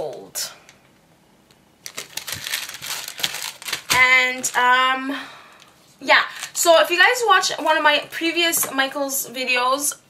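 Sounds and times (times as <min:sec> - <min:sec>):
plastic packaging crinkling: 0:01.5 - 0:05.0, 0:05.6 - 0:07.8.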